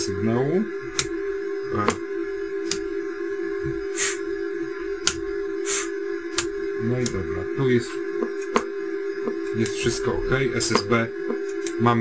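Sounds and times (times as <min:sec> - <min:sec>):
steady electronic tone: 0:00.0 - 0:12.0
short hissy swishes: 0:05.6 - 0:06.0.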